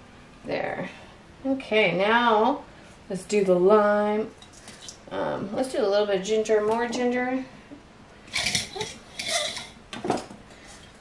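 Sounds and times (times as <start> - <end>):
peppers rattling in metal colander: 8.3 - 9.7.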